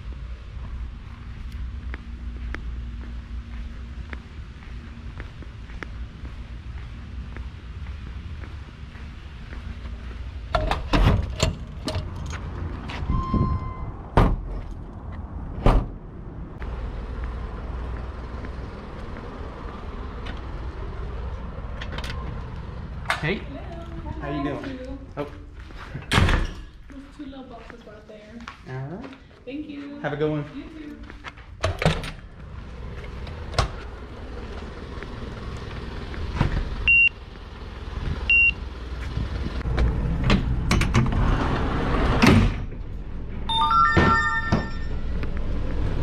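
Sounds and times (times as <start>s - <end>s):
low rumble: 0.0s - 24.2s
truck doors clunking and banging: 10.5s - 14.8s, 15.5s - 16.0s
short beep: 13.1s - 14.0s, 43.5s - 45.1s.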